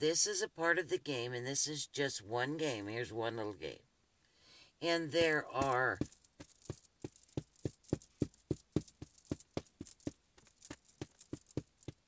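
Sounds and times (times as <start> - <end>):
marker tapping on whiteboard: 5.2 - 6.1.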